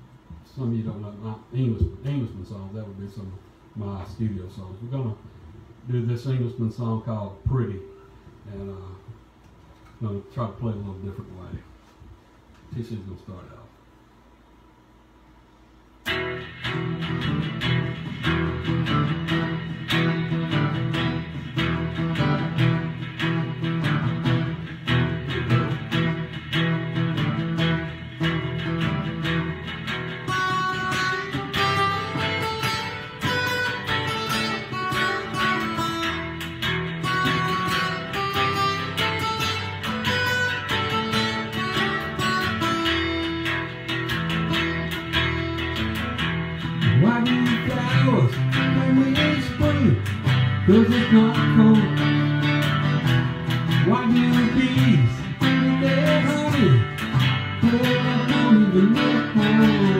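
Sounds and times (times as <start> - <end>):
picked guitar melody: 16.0 - 59.9
strummed guitar chords: 16.0 - 59.9.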